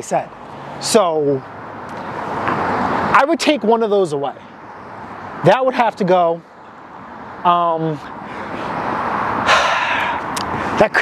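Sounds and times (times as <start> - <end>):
vehicle passing on road: 0.0 - 11.0.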